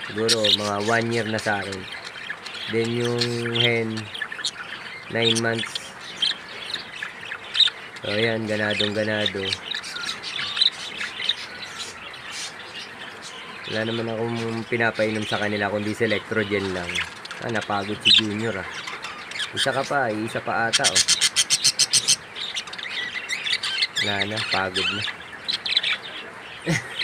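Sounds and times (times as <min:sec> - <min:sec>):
budgerigars chirping: 0:00.0 - 0:27.0.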